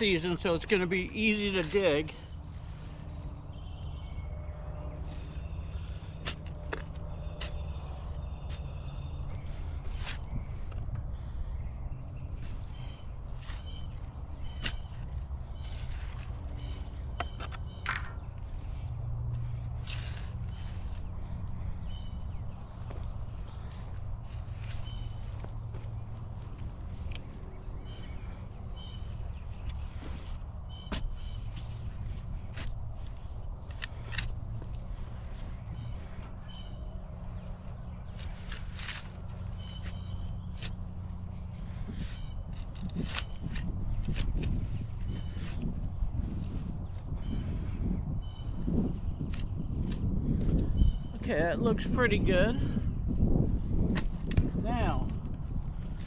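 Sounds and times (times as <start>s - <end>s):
shovel digging into compost: 19.8s - 21.0s.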